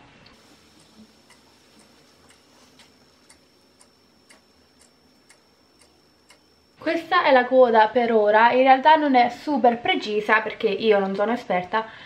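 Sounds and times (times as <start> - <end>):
faint high-pitched whine: 0.0 - 12.0
faint regular ticking: 0.3 - 7.5.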